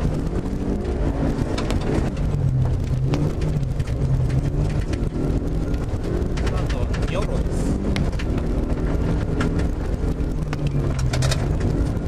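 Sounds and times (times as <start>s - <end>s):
car engine running under load: 0.0s - 12.0s
tyre and road noise: 0.0s - 12.0s.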